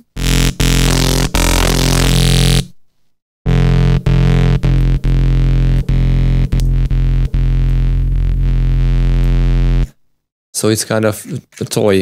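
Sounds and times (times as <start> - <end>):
synthesizer bass notes: 0.0 - 2.7, 3.5 - 10.0.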